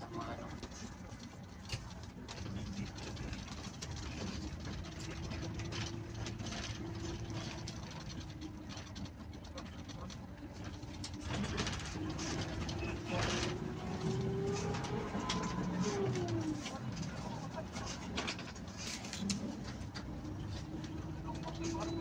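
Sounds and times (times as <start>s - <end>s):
bus engine running: 0.0s - 22.0s
road noise: 0.0s - 22.0s.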